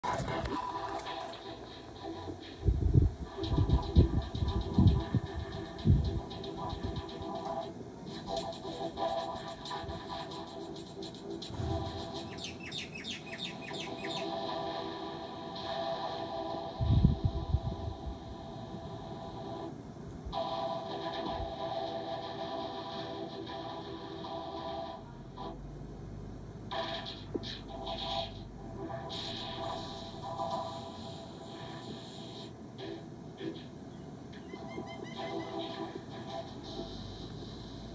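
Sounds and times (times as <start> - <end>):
loud low thump: 11.5 - 12.1
rising chirp-like sweeps: 11.5 - 14.3.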